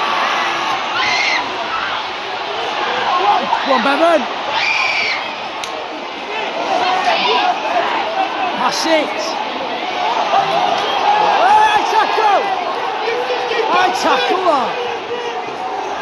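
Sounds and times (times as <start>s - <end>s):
din of crowd voices: 0.0s - 16.0s
spectators shouting: 0.0s - 16.0s.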